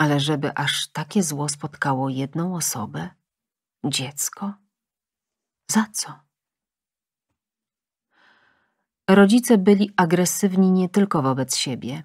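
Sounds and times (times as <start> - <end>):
soft in-breath: 8.1 - 9.0.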